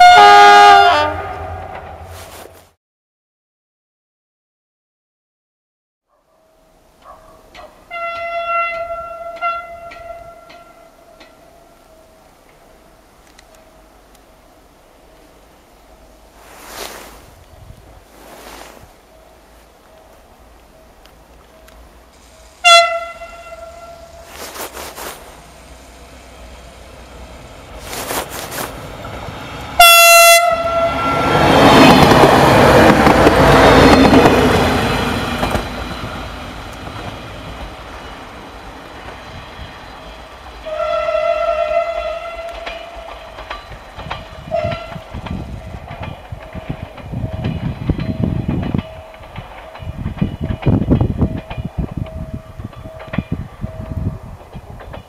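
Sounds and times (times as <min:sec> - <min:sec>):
train horn blasts: 0:00.0 - 0:02.2, 0:07.9 - 0:12.2, 0:22.3 - 0:24.8, 0:29.8 - 0:31.9, 0:40.6 - 0:43.2, 0:44.4 - 0:45.1
train passing rush: 0:00.0 - 0:02.7, 0:06.7 - 0:55.0
wheels clattering over rail joints: 0:42.0 - 0:55.0.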